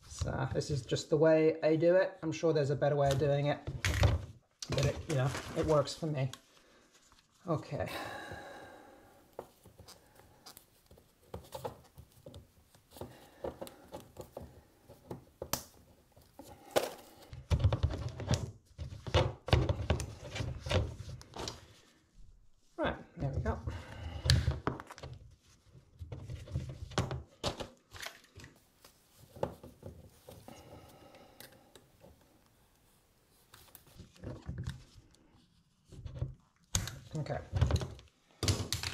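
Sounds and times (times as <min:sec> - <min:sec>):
cables and gloves rustling: 0:02.9 - 0:38.9.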